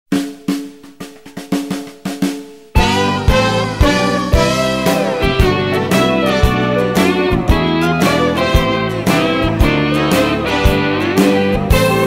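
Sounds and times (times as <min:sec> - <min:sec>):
snare drum strokes: 0:00.1 - 0:12.0.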